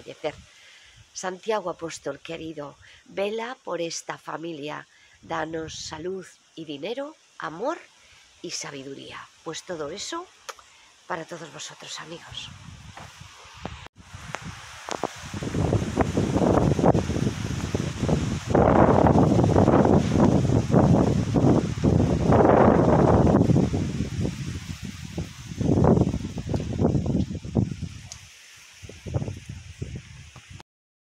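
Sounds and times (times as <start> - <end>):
tree leaves rustling: 0.0 - 30.6
wind blowing on microphone: 5.2 - 6.2, 12.1 - 30.6.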